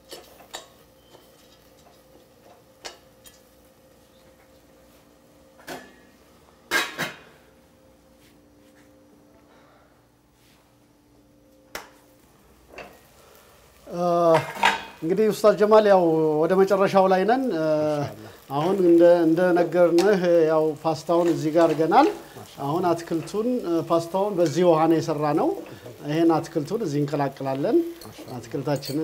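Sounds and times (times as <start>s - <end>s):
metal fork clinking on a pot: 27.9s - 29.0s.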